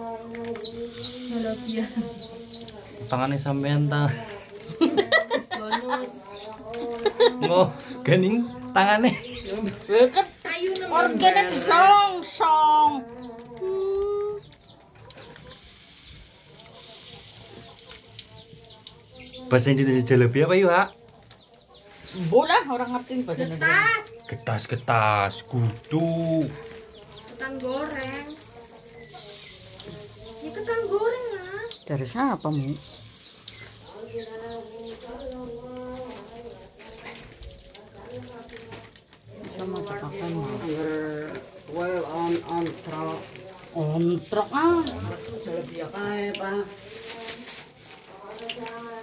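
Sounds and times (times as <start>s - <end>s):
chickens calling: 0.0s - 49.0s
dough frying in oil: 0.0s - 49.0s
small birds chirping: 0.0s - 49.0s.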